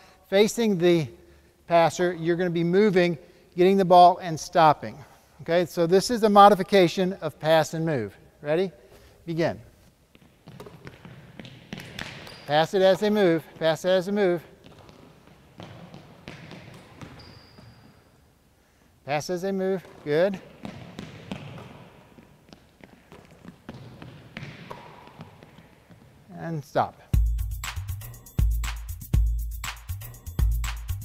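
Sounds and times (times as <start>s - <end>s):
basketball thuds and taps: 10.1s - 13.7s, 14.6s - 18.0s, 19.7s - 26.2s
basketball caught in hands: 10.5s - 12.4s.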